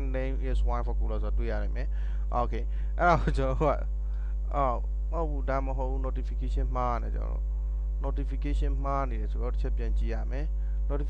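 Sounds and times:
man speaking: 0.0 - 3.9, 4.5 - 7.4, 8.0 - 11.0
electrical mains hum: 0.0 - 11.0.

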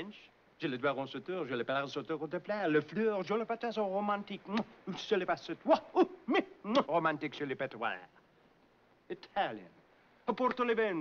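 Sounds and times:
man speaking rapid nonsense: 4.4 - 8.1.

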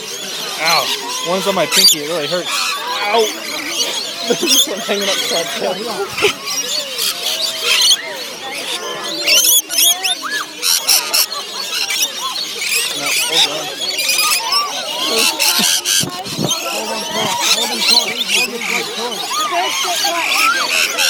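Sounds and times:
parrots screeching and chattering: 0.0 - 21.0.

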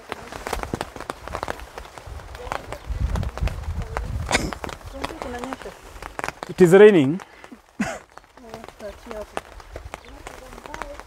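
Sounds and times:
rain on umbrella: 0.0 - 11.0.

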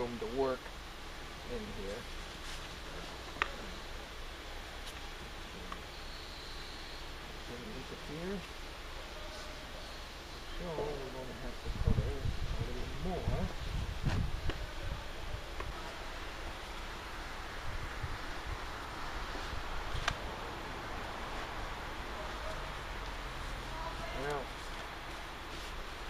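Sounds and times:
background hiss: 0.0 - 26.0.

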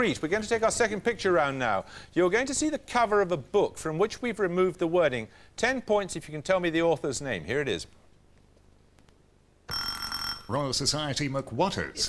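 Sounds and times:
quiz show buzzer tone: 9.7 - 10.6.

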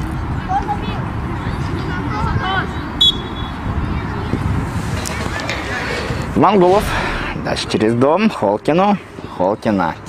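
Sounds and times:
wind rumble on microphone: 0.0 - 8.0
faint distant voices: 0.0 - 10.0.

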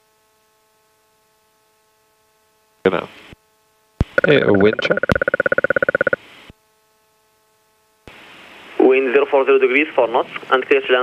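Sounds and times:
faint radio hum: 2.8 - 3.4, 4.0 - 6.6, 8.1 - 11.0
pulsing electronic buzz: 4.0 - 6.2
controller's voice on radio: 4.1 - 5.3.

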